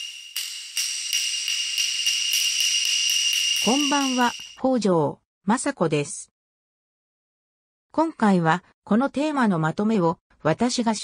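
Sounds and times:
shimmering fluttering chime: 0:00.0 - 0:04.6.

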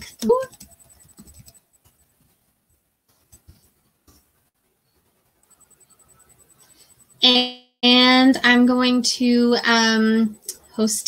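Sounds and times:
computer keyboard and mouse taps: 0:00.1 - 0:02.0.

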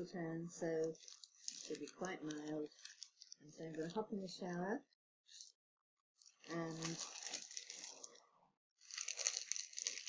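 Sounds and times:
glossy magazine crinkling: 0:00.8 - 0:04.0, 0:06.2 - 0:08.2, 0:08.8 - 0:10.0.

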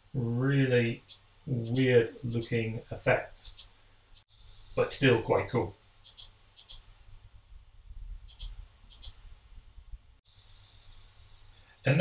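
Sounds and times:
low room rumble: 0:00.0 - 0:12.0
computer mouse clicking: 0:01.0 - 0:02.5, 0:06.0 - 0:06.9, 0:08.3 - 0:09.2.

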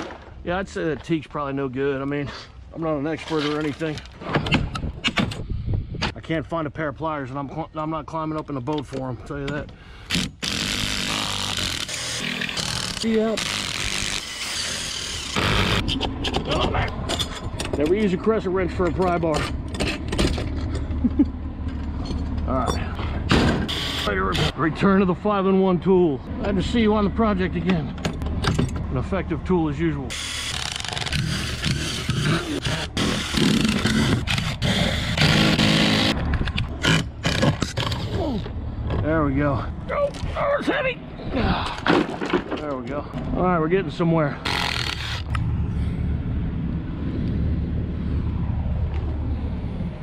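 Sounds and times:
impact driver running under load: 0:30.1 - 0:38.0
wood knocking and cracking: 0:41.8 - 0:42.8.

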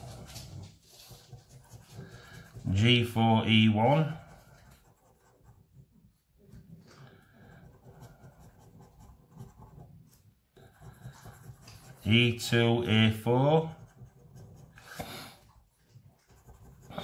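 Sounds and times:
coin scratching a scratchcard: 0:10.6 - 0:12.5.

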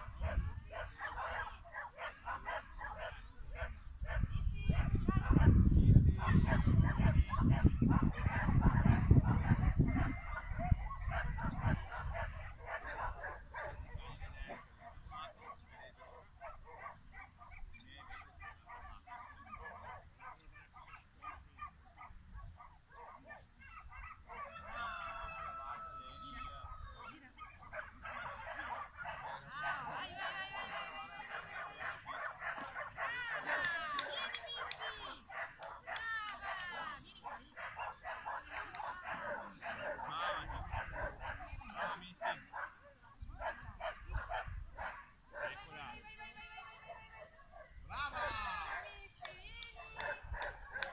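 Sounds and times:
wind rumbling on microphone: 0:00.0 - 0:01.6, 0:02.6 - 0:15.1, 0:43.2 - 0:45.0
dog barking and yelping: 0:00.0 - 0:05.6, 0:06.2 - 0:13.9, 0:14.5 - 0:24.8, 0:26.4 - 0:45.6, 0:50.0 - 0:50.9.

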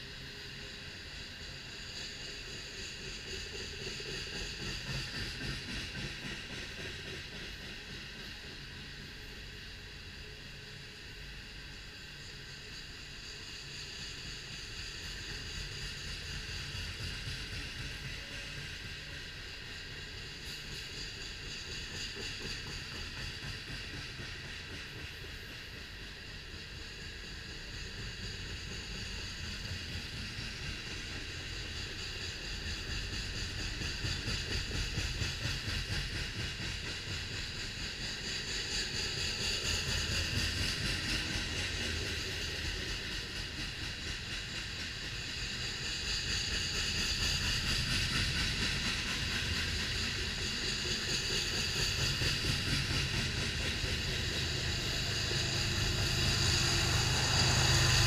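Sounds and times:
freight train wheels rumbling: 0:00.0 - 0:58.0
high hiss: 0:00.0 - 0:58.0.

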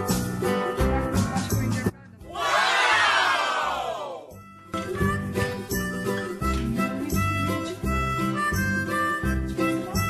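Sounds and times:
crowd cheering: 0:02.3 - 0:04.3.

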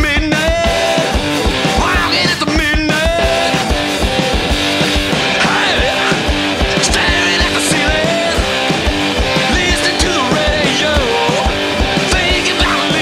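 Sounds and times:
hard rock band playing: 0:00.0 - 0:13.0.

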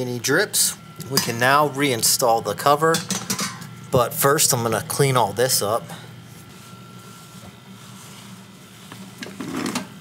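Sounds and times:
steady low hum: 0:00.0 - 0:10.0
towel wiping floor: 0:06.3 - 0:09.7.

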